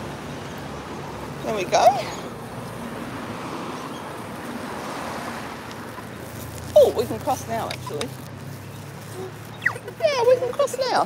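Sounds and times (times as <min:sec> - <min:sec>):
road traffic passing: 0:00.0 - 0:11.0.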